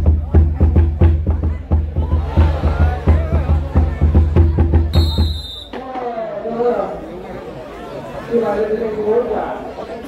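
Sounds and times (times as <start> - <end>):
drum beating fast: 0.0 - 6.2
crowd chatter: 0.0 - 10.0
shrill whistle blast: 4.9 - 5.8.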